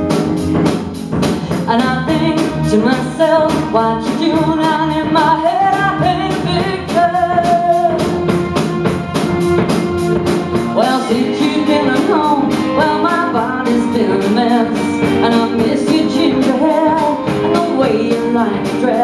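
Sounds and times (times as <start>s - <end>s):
drum kit beat: 0.0s - 19.0s
electric guitar: 0.0s - 19.0s
woman singing lead: 1.4s - 8.8s, 10.5s - 19.0s.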